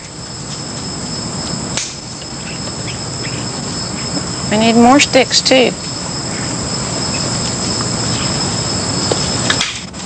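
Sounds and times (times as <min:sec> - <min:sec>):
insects chirring: 0:00.0 - 0:10.0.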